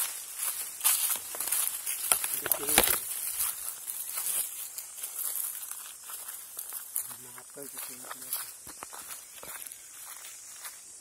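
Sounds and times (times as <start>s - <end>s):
footsteps through dry brush: 0.0s - 11.0s.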